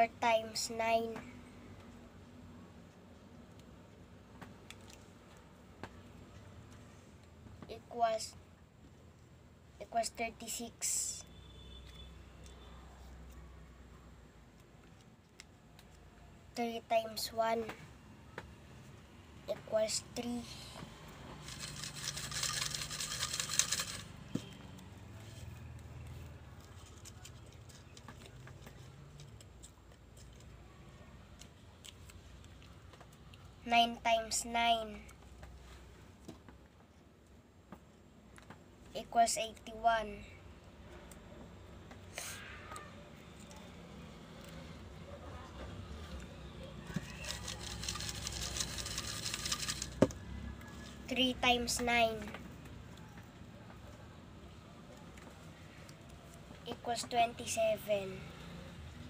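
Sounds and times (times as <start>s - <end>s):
paper slips rattling in glass jar: 21.4s - 24.2s, 46.9s - 50.0s.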